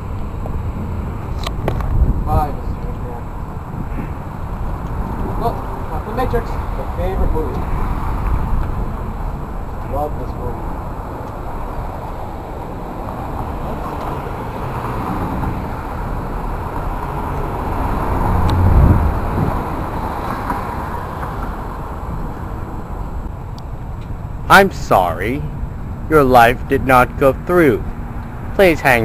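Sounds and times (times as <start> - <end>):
vehicle rumbling past: 0.0 - 24.5
street traffic: 0.0 - 29.0.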